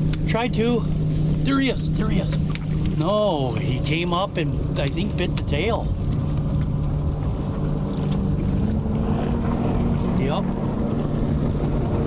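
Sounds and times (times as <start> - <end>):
boat motor humming: 0.0 - 12.0
wind on microphone: 0.0 - 12.0.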